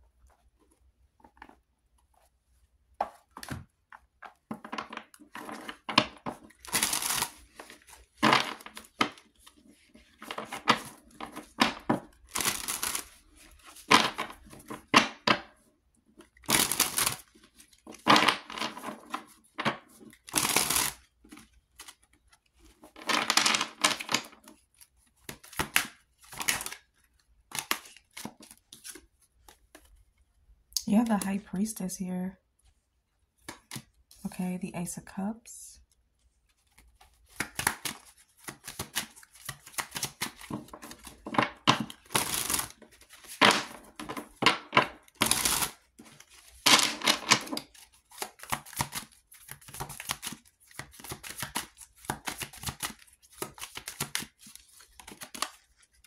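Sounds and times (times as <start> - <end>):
cards being shuffled: 3.0 - 15.5, 16.2 - 30.2, 36.4 - 56.0.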